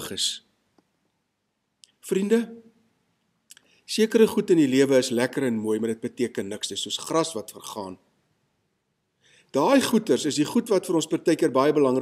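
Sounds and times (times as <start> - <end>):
man speaking: 0.0 - 0.5, 1.9 - 2.8, 3.9 - 8.1, 9.5 - 12.0.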